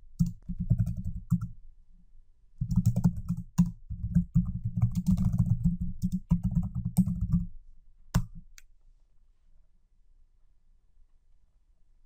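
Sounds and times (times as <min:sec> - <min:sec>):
typing on computer keyboard: 0:00.2 - 0:01.5, 0:02.6 - 0:07.5.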